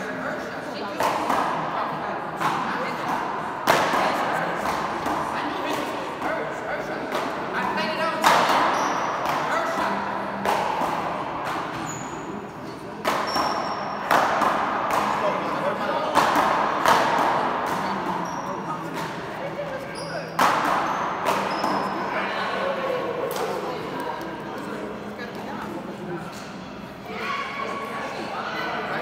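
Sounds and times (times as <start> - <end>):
paddle hitting ball echoing: 2.4 - 6.4, 8.2 - 12.2, 13.0 - 18.2, 20.3 - 22.0.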